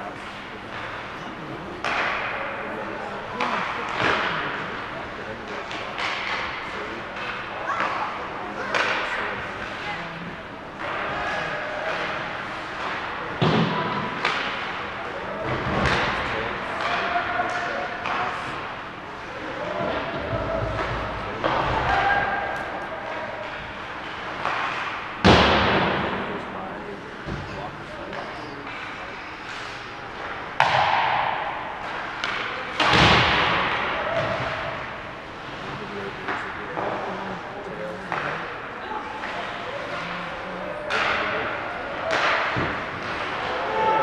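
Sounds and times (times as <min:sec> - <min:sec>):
hard hits against rink boards: 0:01.8 - 0:09.8, 0:10.8 - 0:37.1, 0:40.7 - 0:44.0.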